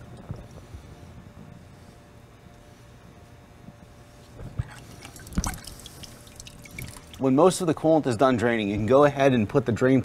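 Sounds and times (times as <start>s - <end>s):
liquid plops: 4.6s - 7.2s
coolant dripping and splashing: 4.6s - 7.3s.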